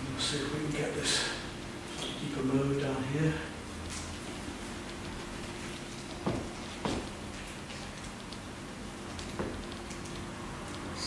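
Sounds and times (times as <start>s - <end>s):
steady low room hum: 0.0s - 11.0s.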